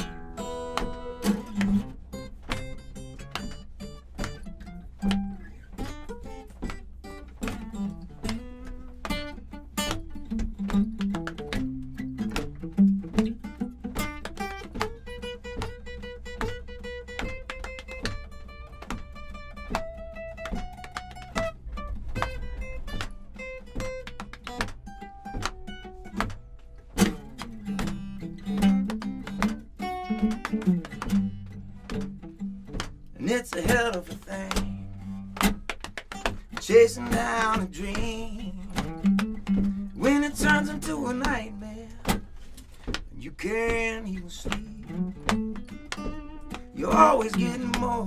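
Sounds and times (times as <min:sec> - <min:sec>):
acoustic guitar playing: 0:00.0 - 0:48.0.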